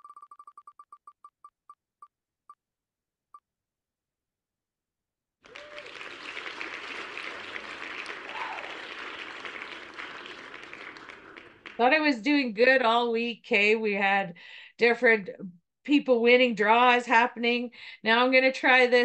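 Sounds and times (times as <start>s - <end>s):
applause sound effect: 5.4s - 12.2s.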